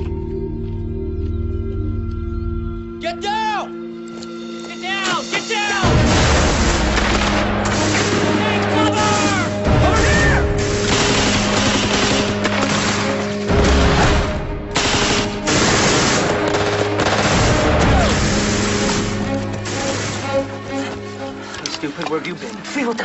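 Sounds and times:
background music with held notes: 0.0 - 23.0
rapid gunfire: 5.9 - 20.4
machine-gun bursts: 10.6 - 13.4, 14.8 - 19.0
rifle shots: 10.6 - 19.1.

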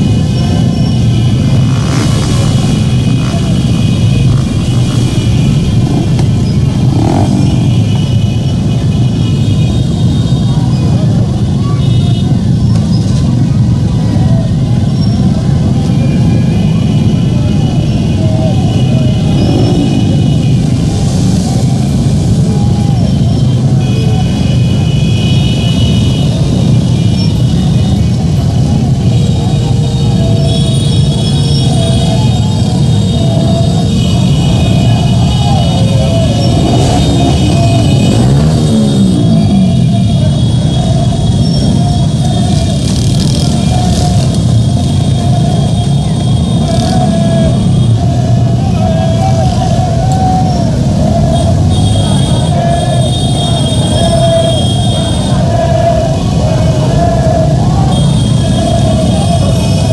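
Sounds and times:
many motorcycle engines running: 0.0 - 59.9
voices: 0.0 - 59.9.

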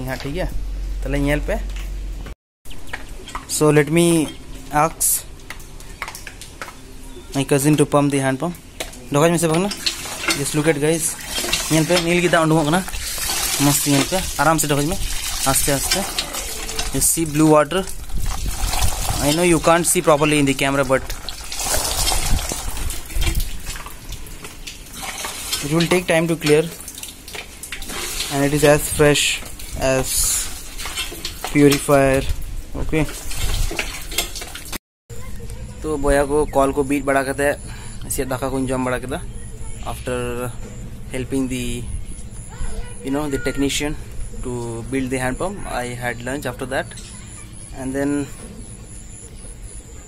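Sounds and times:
water gushing from hand pump: 9.3 - 34.8.

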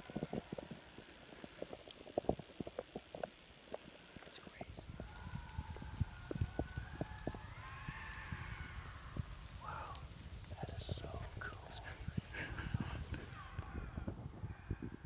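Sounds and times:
lynx yowling: 4.8 - 11.2.

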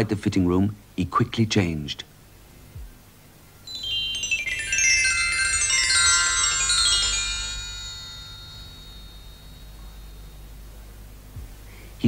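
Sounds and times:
bright ringing chime notes: 3.7 - 10.7.

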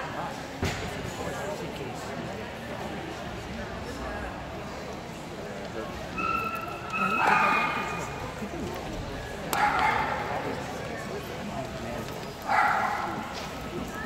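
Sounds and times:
dog yipping barks: 12.5 - 13.2.

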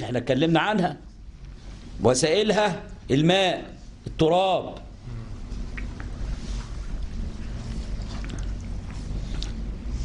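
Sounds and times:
low hum: 4.9 - 10.0.

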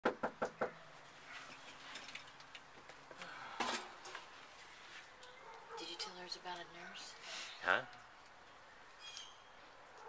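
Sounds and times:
knuckles knocking on door: 0.0 - 0.8.

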